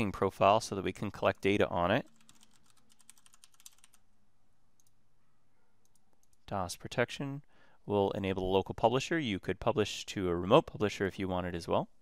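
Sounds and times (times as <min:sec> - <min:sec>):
typing on a computer keyboard: 0:02.1 - 0:04.0.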